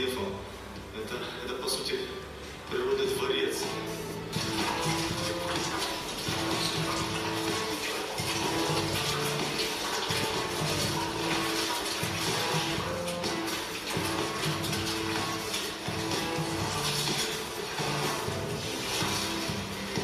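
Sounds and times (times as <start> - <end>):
music from tv speakers: 0.0 - 20.0.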